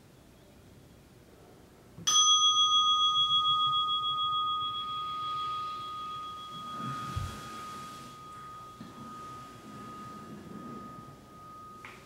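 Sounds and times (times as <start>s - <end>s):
meditation bell ringing: 2.1s - 12.0s
cloth rustling: 5.7s - 11.8s.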